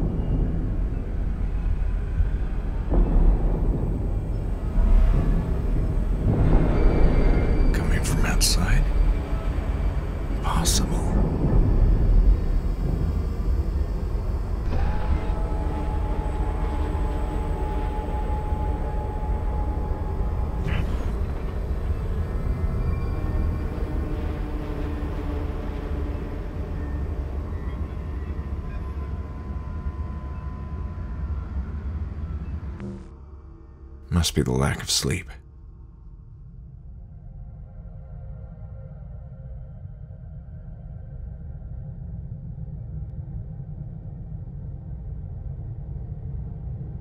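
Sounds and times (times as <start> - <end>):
sustained droning tones: 0.0 - 34.0
deep steady rumble: 0.0 - 47.0.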